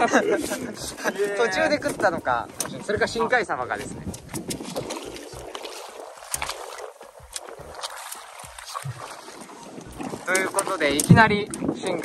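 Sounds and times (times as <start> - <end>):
water lapping against boat hull: 0.0 - 12.0
wind on microphone: 0.0 - 12.0.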